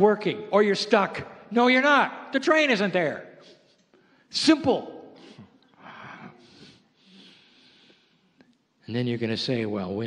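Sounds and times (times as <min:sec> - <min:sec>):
man breathing: 0:05.2 - 0:08.5.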